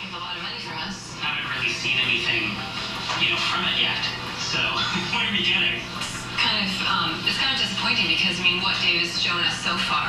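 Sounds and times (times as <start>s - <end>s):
television music: 0.0s - 10.0s
television voice: 0.0s - 10.0s.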